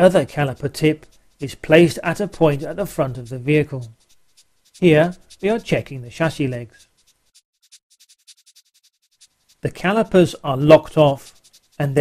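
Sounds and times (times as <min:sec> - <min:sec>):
faint rapid high-pitched ticking: 0:00.0 - 0:12.0.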